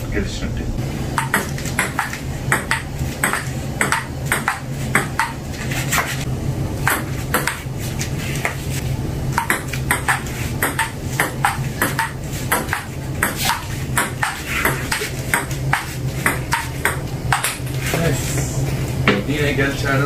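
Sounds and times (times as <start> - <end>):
low hum: 0.0 - 20.0
ping pong ball clicking: 1.2 - 5.4, 6.9 - 7.6, 9.4 - 17.6.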